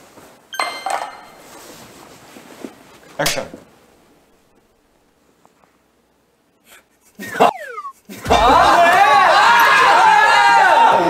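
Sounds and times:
soft rustle: 0:01.4 - 0:03.2.

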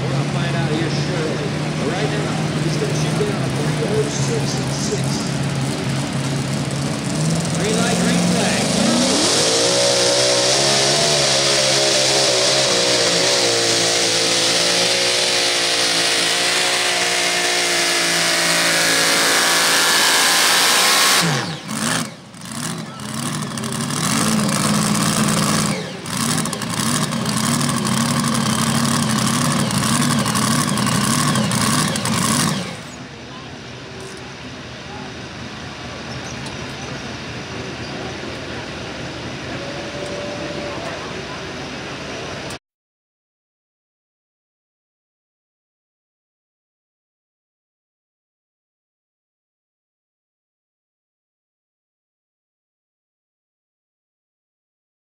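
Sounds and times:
tractor engine revving: 0:00.0 - 0:42.6.

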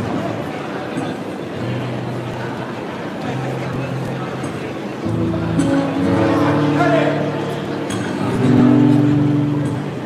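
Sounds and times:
noisy hall ambience: 0:00.0 - 0:10.0.

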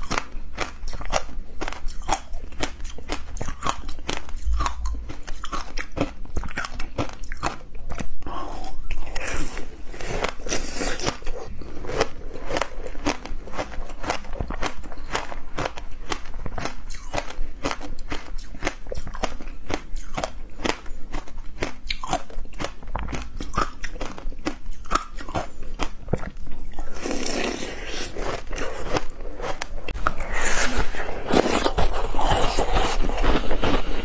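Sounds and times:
crunching and chewing frozen treat: 0:00.0 - 0:34.0.

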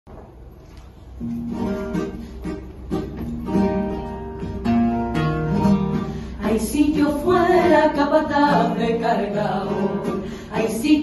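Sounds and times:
acoustic guitar strumming chords: 0:01.2 - 0:11.0.

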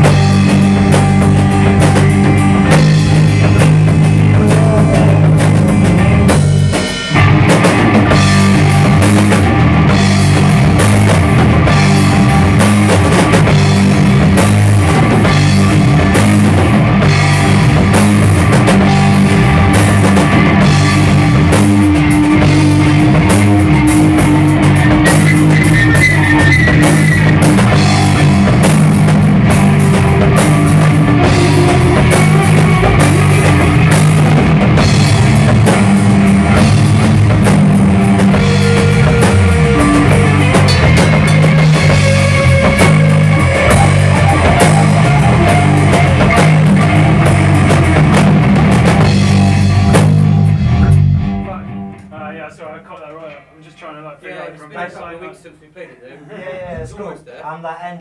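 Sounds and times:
live rock band playing: 0:00.0 - 0:52.2.

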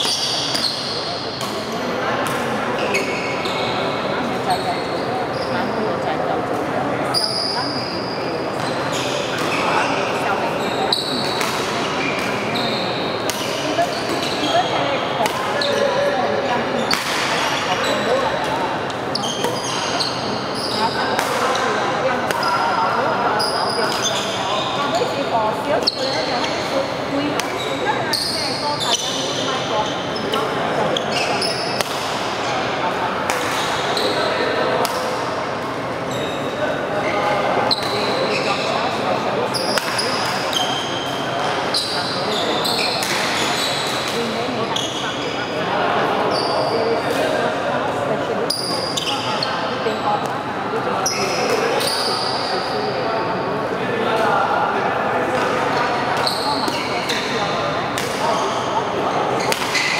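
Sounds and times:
shoe squeaks on court floor: 0:00.0 - 0:01.4, 0:02.8 - 0:05.8, 0:07.1 - 0:31.8, 0:33.5 - 0:34.5, 0:36.1 - 0:45.5, 0:46.2 - 0:47.4, 0:48.4 - 0:50.2, 0:51.0 - 0:53.0, 0:55.4 - 0:58.8, 0:59.4 - 0:59.9
echoing hubbub of voices: 0:00.0 - 0:59.9.

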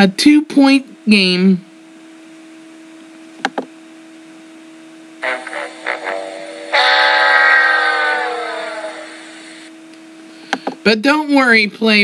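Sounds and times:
sad trombone sound effect: 0:05.2 - 0:09.5.

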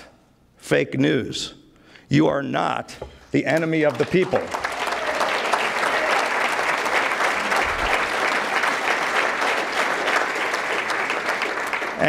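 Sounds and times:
audience applauding: 0:03.8 - 0:12.0.

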